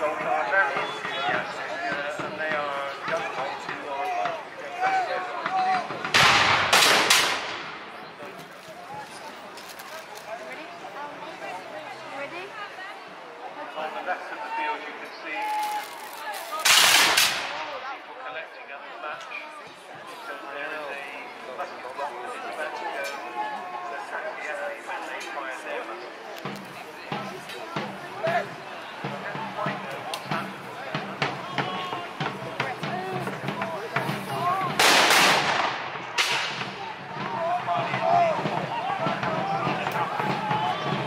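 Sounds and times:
voices murmuring: 0:00.0 - 0:06.6, 0:07.4 - 0:41.0
musket volley: 0:00.2 - 0:08.4, 0:26.4 - 0:41.0
black-powder gunshots: 0:06.0 - 0:07.9, 0:16.6 - 0:17.8, 0:34.8 - 0:36.7.

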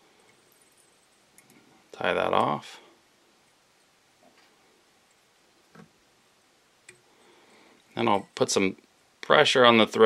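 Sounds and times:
faint clicks of fly tying: 0:01.3 - 0:01.7, 0:06.8 - 0:07.2.

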